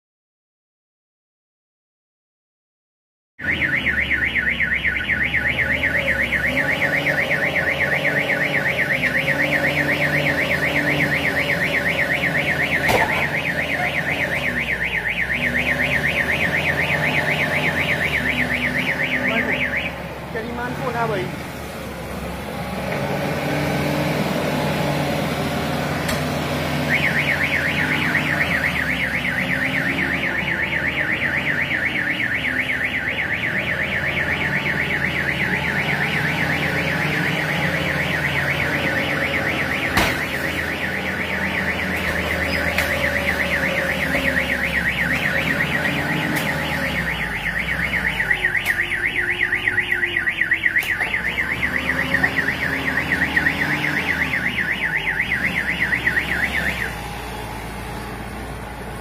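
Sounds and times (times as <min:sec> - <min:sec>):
car alarm warbling: 0:03.4 - 0:21.3, 0:26.6 - 0:57.4
forklift engine running: 0:21.4 - 0:59.0.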